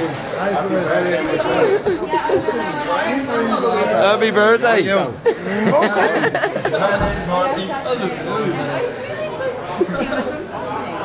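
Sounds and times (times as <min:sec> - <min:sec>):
group of people chattering: 0:00.0 - 0:11.0.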